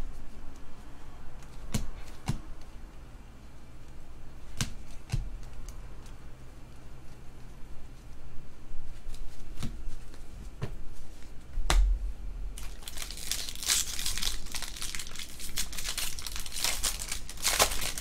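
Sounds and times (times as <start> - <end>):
foil card pack tearing: 12.6 - 18.0.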